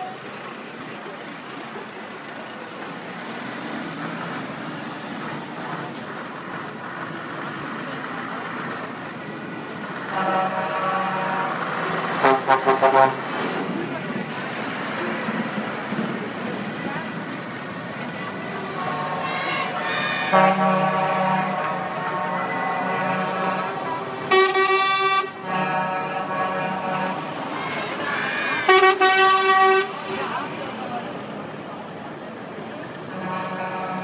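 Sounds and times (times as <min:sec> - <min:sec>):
lorry engines running: 0:00.0 - 0:34.0
air horn blasts: 0:10.1 - 0:11.6, 0:12.2 - 0:13.2, 0:18.8 - 0:30.0, 0:33.1 - 0:34.0.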